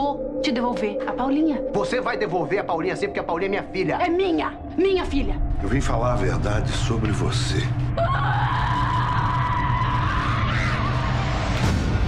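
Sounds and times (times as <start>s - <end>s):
woman screaming: 8.0s - 11.0s.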